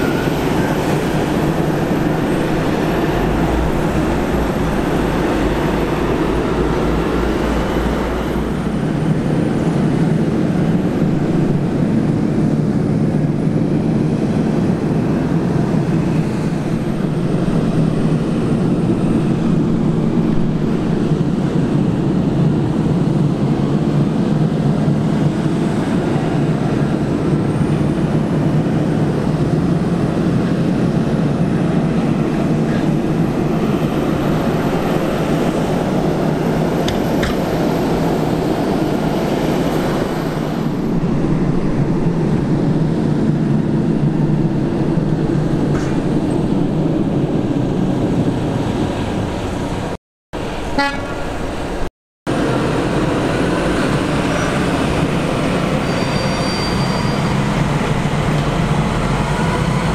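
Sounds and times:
tractor diesel engine running: 0:00.0 - 0:48.6.

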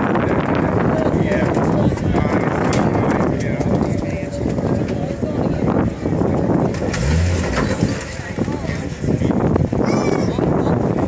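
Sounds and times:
outdoor background noise: 0:00.0 - 0:11.0
engine revving: 0:06.7 - 0:08.4.

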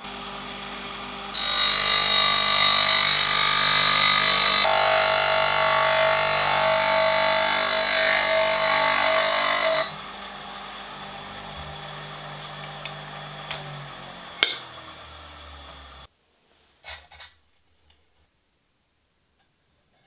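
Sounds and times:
bench grinder grinding steel: 0:00.1 - 0:16.1
grinder motor humming: 0:00.1 - 0:16.1.

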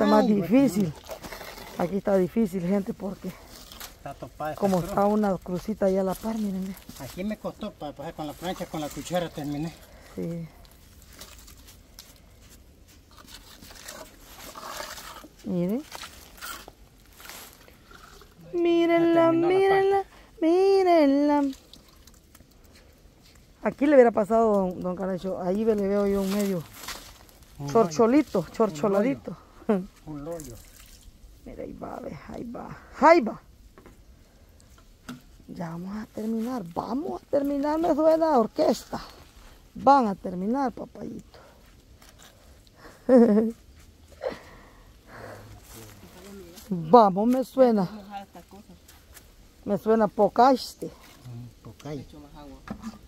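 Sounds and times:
steel trowel scraping cement: 0:13.3 - 0:15.4.

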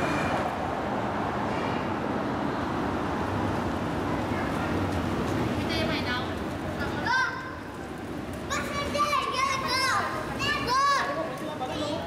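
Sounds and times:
street background noise: 0:00.0 - 0:12.0
children calling out and chattering: 0:04.0 - 0:12.0.

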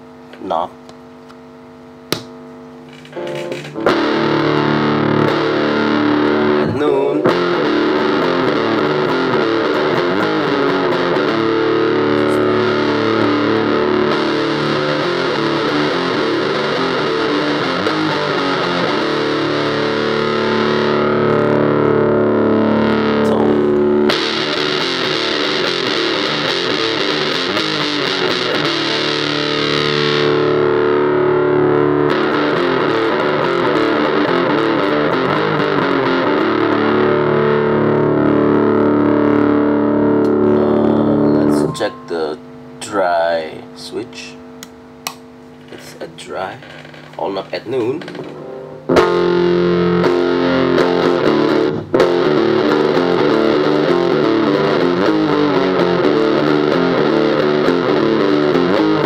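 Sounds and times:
electric guitar fuzz chords: 0:00.0 - 0:59.0.

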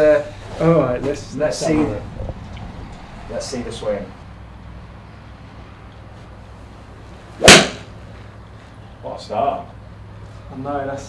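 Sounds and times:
golf iron striking ball: 0:07.4 - 0:07.9.

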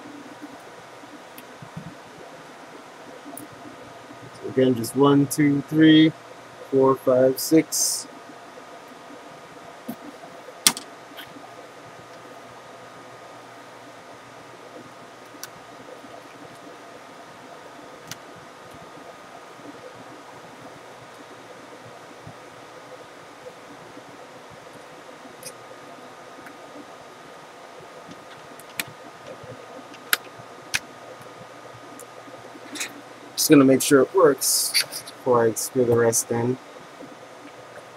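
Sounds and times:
background hum with faint tones: 0:00.0 - 0:37.9.

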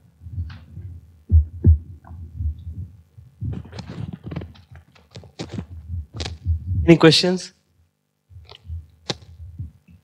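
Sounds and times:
thumps on clip-on microphone: 0:00.3 - 0:06.8, 0:08.4 - 0:10.0
man speaking: 0:06.8 - 0:07.6.

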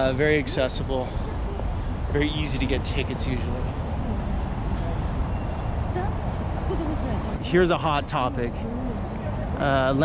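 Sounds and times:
low rumble of city traffic: 0:00.0 - 0:10.0
passers-by talking: 0:00.0 - 0:10.0.

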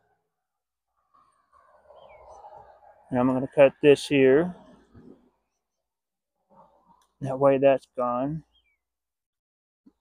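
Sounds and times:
faint outdoor background noise: 0:00.0 - 0:09.2
falling bird chirp: 0:01.1 - 0:02.8, 0:08.4 - 0:08.9.

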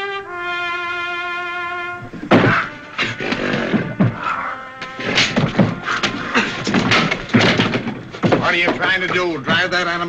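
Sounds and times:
held brass note: 0:00.0 - 0:06.2
sudden loud thump: 0:02.2 - 0:08.6.

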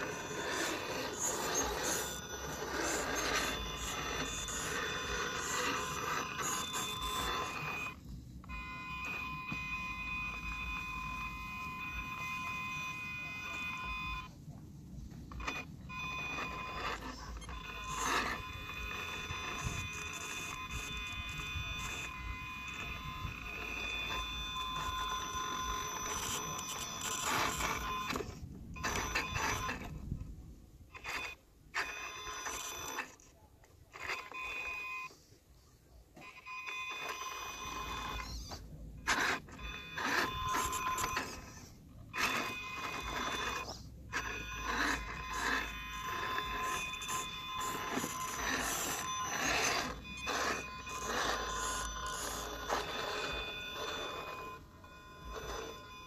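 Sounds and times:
electric motor whining: 0:00.0 - 0:14.3, 0:15.0 - 0:30.2, 0:30.9 - 0:33.3, 0:36.6 - 0:56.0.

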